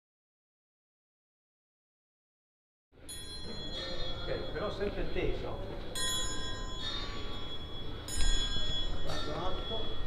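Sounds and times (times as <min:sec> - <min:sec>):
bell ringing: 0:03.0 - 0:10.0.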